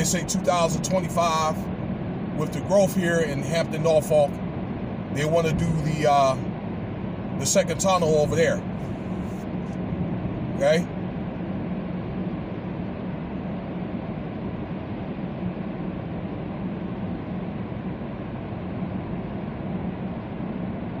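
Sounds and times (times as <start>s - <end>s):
low steady hum: 0.0s - 21.0s
tyre road noise inside car: 0.0s - 21.0s.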